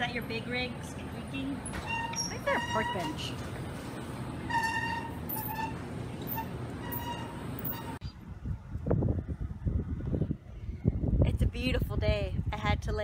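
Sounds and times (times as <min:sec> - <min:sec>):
high-pitched cart squeaks: 0:01.6 - 0:03.5, 0:04.4 - 0:08.1
shopping cart rolling: 0:01.7 - 0:08.0
wind gusting on microphone: 0:08.0 - 0:13.0.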